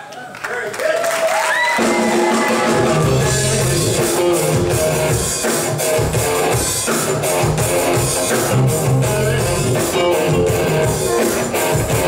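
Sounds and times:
live rock band playing: 1.8s - 12.0s.

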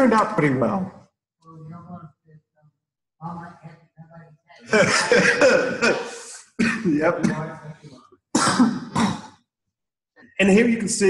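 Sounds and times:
person coughing: 4.8s - 7.6s, 8.3s - 9.5s.

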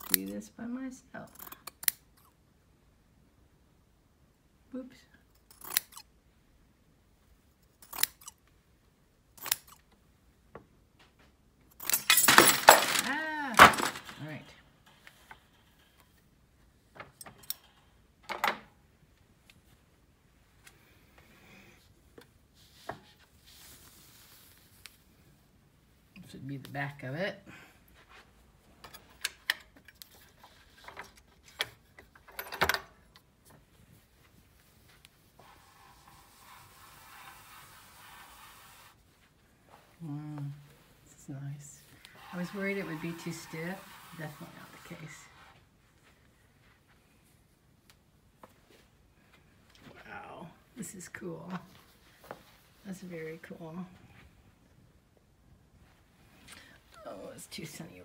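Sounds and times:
scissors snipping threads: 5.4s - 6.0s
fabric rustling: 22.0s - 26.0s, 51.3s - 54.6s
cloth scraping and rustling: 22.5s - 25.3s, 41.8s - 47.0s.

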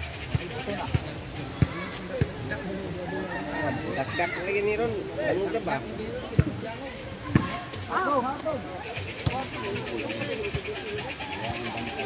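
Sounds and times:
volleyball struck by hand: 9.2s - 9.6s.

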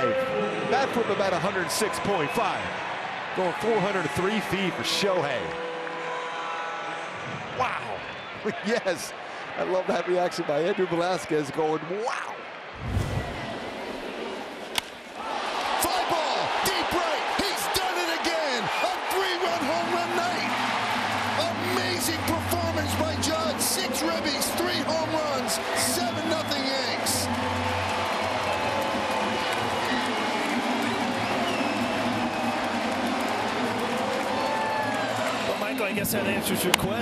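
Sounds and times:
crowd cheering: 0.0s - 37.0s.

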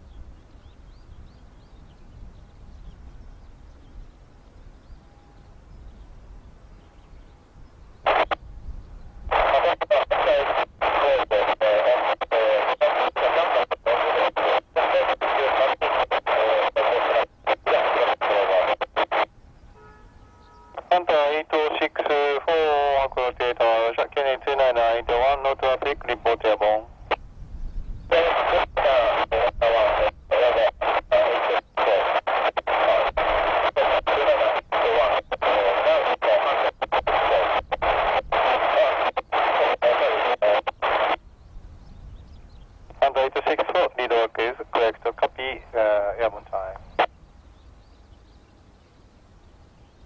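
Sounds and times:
weak radio transmission: 8.0s - 8.4s, 9.1s - 19.3s, 20.7s - 41.2s, 42.8s - 47.2s
radio static hiss: 8.0s - 8.5s, 9.2s - 19.4s, 20.7s - 41.2s, 42.7s - 47.2s.

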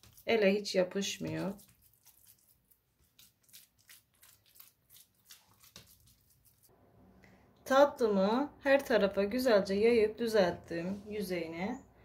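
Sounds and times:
hands patting dough: 0.0s - 6.7s.

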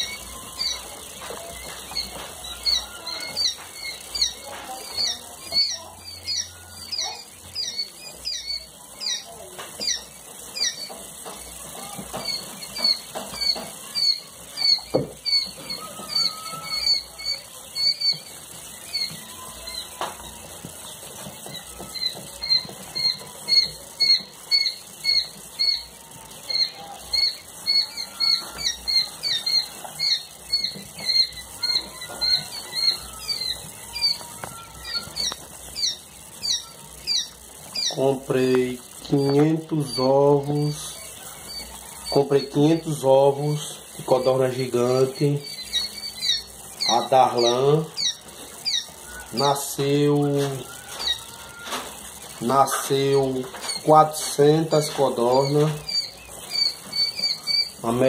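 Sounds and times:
chicks peeping: 0.0s - 58.0s.

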